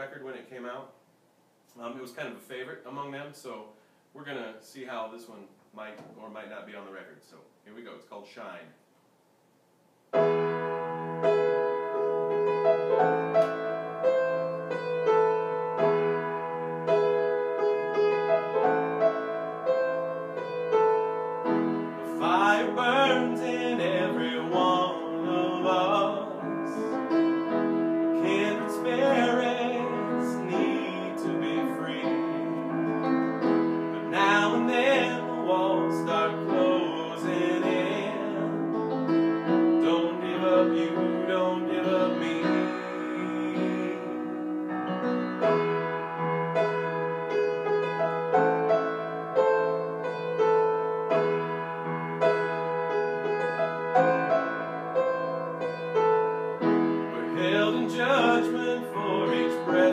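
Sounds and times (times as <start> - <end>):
piano accompaniment: 10.1 - 59.9
man singing: 22.0 - 27.1, 28.2 - 32.7, 34.0 - 38.8, 39.5 - 44.6, 57.1 - 59.9.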